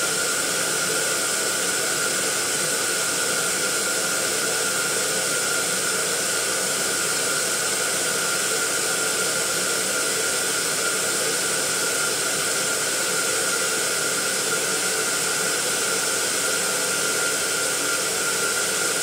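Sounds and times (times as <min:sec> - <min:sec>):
electric air pump running: 0:00.0 - 0:19.0.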